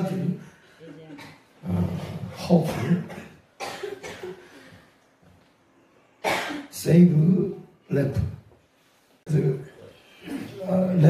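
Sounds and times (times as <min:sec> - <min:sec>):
person coughing: 0:02.6 - 0:04.7, 0:06.2 - 0:06.7.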